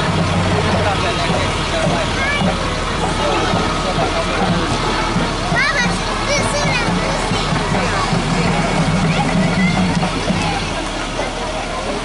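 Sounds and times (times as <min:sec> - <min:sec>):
crowd chatter: 0:00.0 - 0:12.0
truck engine running: 0:00.0 - 0:12.0.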